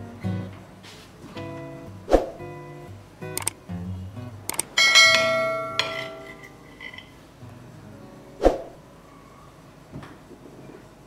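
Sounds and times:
quick clicks: 3.4s - 3.6s, 4.5s - 4.8s
bright bell ding: 4.8s - 6.5s.

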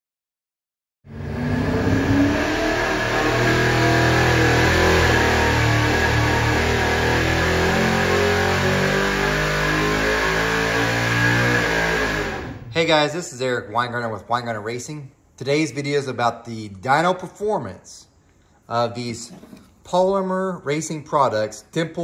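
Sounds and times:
engine running at high revs: 1.1s - 12.7s.

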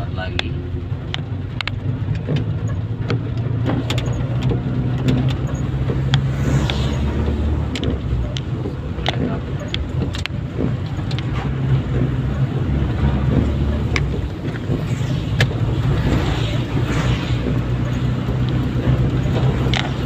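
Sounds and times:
engine and road rumble: 0.0s - 20.0s
raindrops striking windshield: 0.0s - 20.0s.

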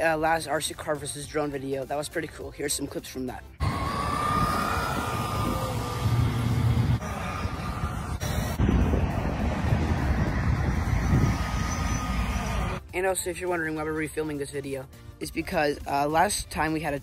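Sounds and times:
electric motor whine: 3.6s - 12.8s
wind rumbling on microphone: 3.6s - 12.8s.

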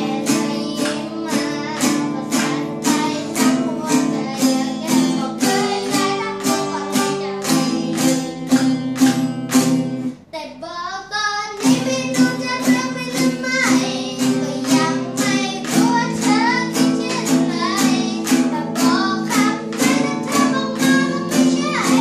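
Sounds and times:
boy singing: 0.0s - 9.3s, 10.3s - 22.0s
acoustic guitar strumming: 0.0s - 10.3s, 11.6s - 22.0s.

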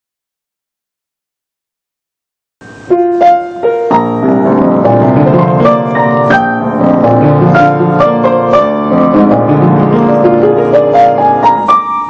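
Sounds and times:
piano melody over low chords: 2.6s - 12.0s.

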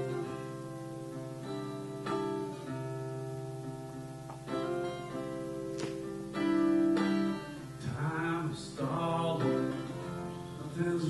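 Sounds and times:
acoustic guitar: 0.0s - 11.0s
man singing: 7.6s - 11.0s.

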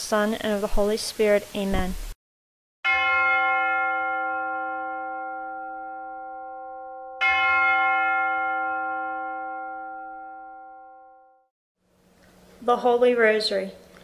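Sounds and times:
bell ringing: 2.9s - 11.4s.

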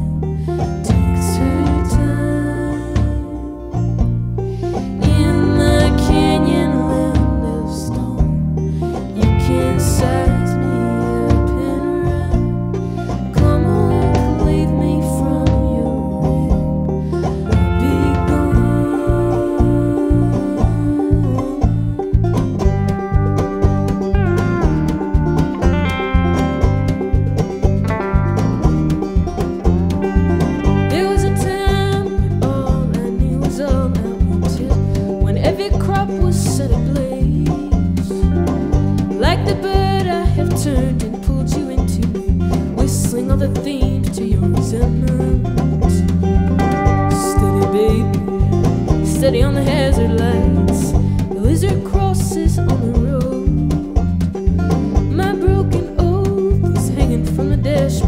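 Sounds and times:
banjo picking: 0.0s - 58.0s
drum kit: 0.0s - 58.0s
electric guitar: 0.0s - 58.0s
steady low beat: 3.1s - 14.6s
keyboard sustaining notes: 5.0s - 8.2s.

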